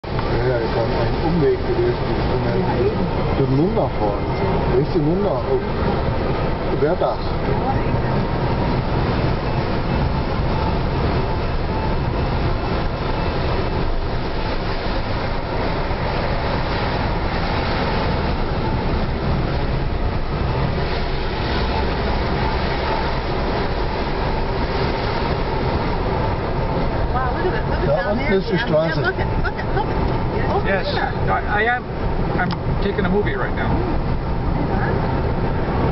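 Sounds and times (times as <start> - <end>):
car engine: 0.0 - 35.9
tyres on wet asphalt: 0.0 - 35.9.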